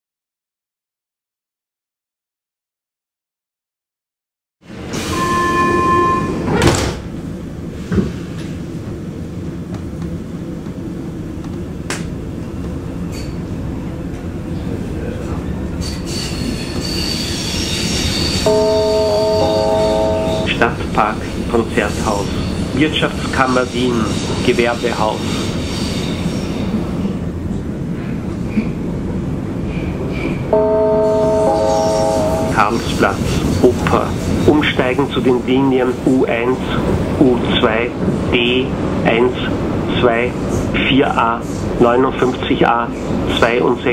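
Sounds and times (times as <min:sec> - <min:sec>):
train car running noise: 0:04.6 - 0:43.9
door-closing warning tone: 0:04.9 - 0:07.0, 0:18.5 - 0:20.6, 0:30.5 - 0:33.0
sliding doors shutting with a thud: 0:06.4 - 0:07.1.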